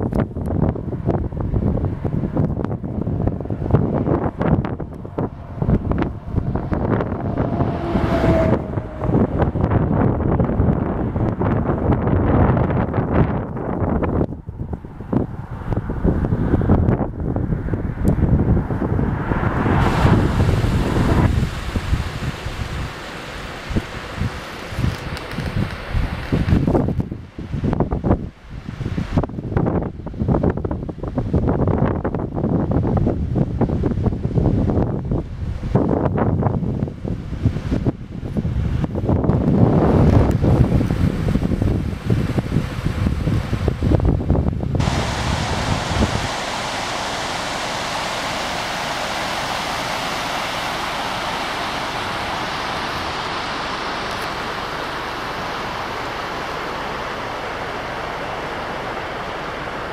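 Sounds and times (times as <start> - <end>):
rushing water of a stream: 0.0 - 59.9
wind buffeting microphone: 0.0 - 59.9.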